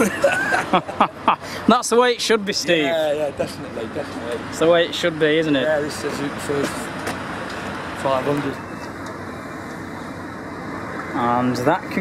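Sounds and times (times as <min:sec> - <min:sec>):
outdoor background rumble and hiss: 0:00.0 - 0:12.0.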